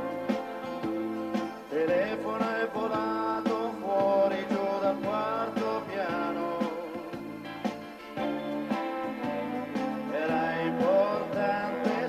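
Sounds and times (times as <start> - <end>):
live band playing pop song: 0.0 - 12.0
steady drum beat: 0.0 - 12.0
sliding melody line: 7.6 - 12.0.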